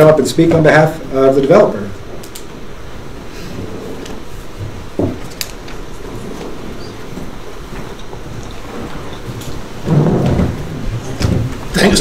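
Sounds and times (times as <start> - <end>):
low room hum and hiss: 0.0 - 12.0.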